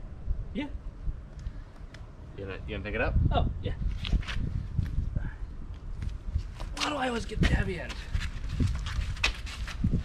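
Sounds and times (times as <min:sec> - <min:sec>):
footsteps on concrete: 0:03.9 - 0:05.0, 0:05.8 - 0:10.0.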